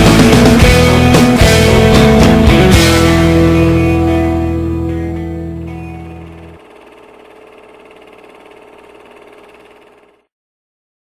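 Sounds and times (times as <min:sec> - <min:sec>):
heavy bass: 0:00.0 - 0:06.6
rock song ending: 0:00.0 - 0:06.6.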